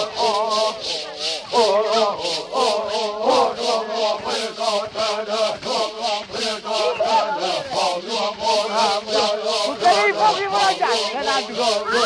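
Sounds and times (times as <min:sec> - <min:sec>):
voices chanting: 0:00.0 - 0:12.0.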